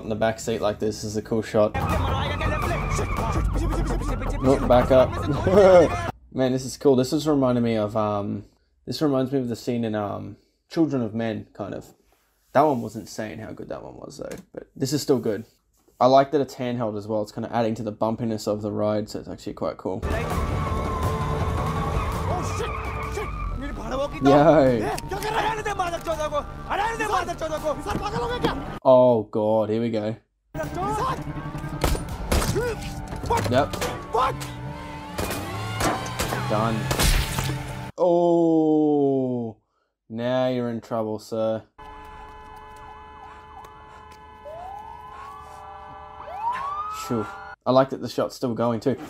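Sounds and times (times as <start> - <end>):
tense film score: 1.7 - 6.1, 20.0 - 28.8, 30.6 - 37.9
police siren wailing: 1.8 - 6.1, 20.0 - 28.8, 30.6 - 36.9, 41.8 - 47.6.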